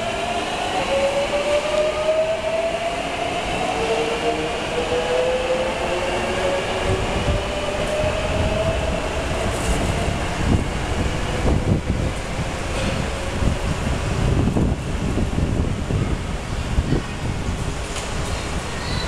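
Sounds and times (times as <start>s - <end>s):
wheels rumbling on track: 6.5s - 19.0s.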